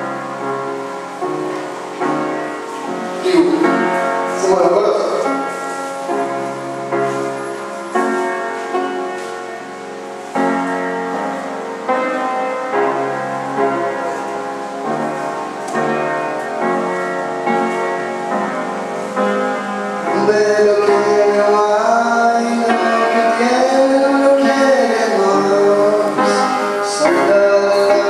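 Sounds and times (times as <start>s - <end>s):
piano playing slow chords: 0.0s - 28.0s.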